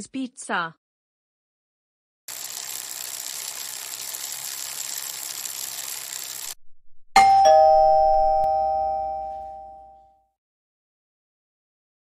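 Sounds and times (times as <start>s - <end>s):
two-note doorbell chime: 7.2s - 10.2s.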